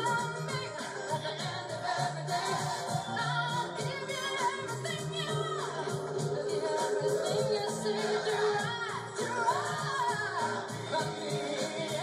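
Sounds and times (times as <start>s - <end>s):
instrumental backing with bass: 0.0s - 12.0s
person singing: 0.0s - 12.0s.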